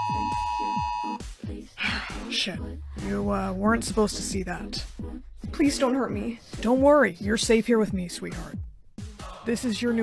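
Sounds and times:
phone alert two-note beep: 0.0 - 1.2
background music with steady beat: 0.0 - 10.0.

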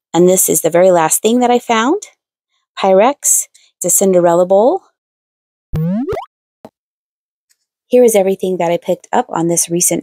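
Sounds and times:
cartoon bloop rising in pitch: 5.8 - 6.3.

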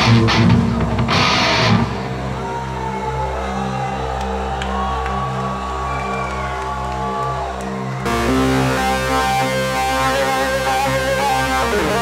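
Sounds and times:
heavy guitar: 0.0 - 2.5, 8.1 - 12.0
crowd whistling: 4.8 - 8.1
low keyboard chords: 8.0 - 12.0.

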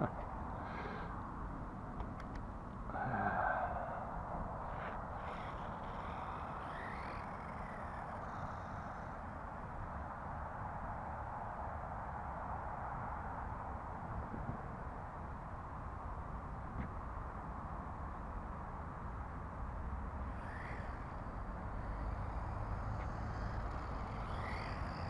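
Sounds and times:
rc car motor whine: 2.9 - 11.2, 19.7 - 25.0.

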